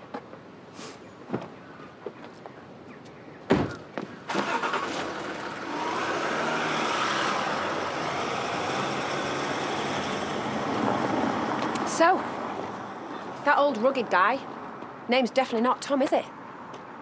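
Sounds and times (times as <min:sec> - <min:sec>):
car engine starting and running: 0:04.3 - 0:11.8.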